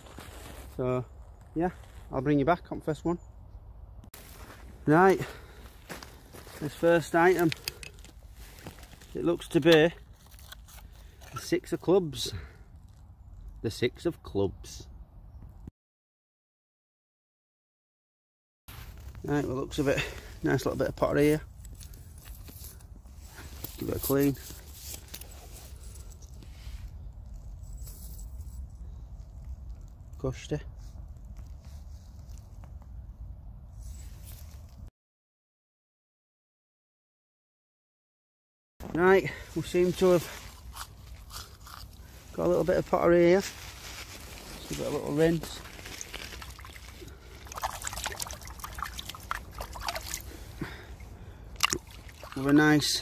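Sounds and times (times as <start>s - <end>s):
pottery rinsed in river water: 39.6s - 53.0s.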